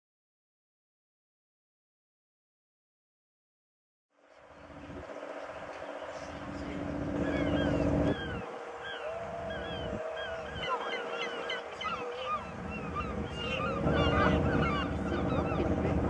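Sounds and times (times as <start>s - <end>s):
ship engines humming: 4.2s - 16.0s
flock of birds calling: 4.4s - 16.0s.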